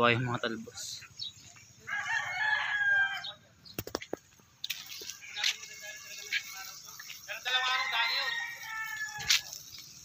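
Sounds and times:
rooster crowing: 1.8s - 3.4s, 7.4s - 9.6s.

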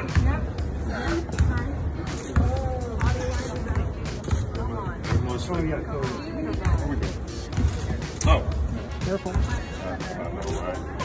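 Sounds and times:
music with thumping beat: 0.0s - 11.0s.

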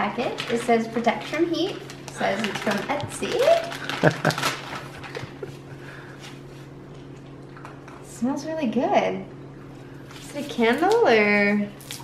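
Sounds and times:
low electrical hum: 0.0s - 12.0s
cardboard and paper rustling: 0.3s - 5.6s.

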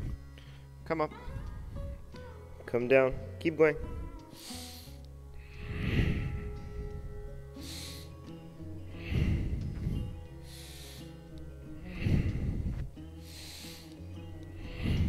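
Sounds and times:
soft background music: 0.0s - 15.0s
man breathing hard: 3.8s - 15.0s.

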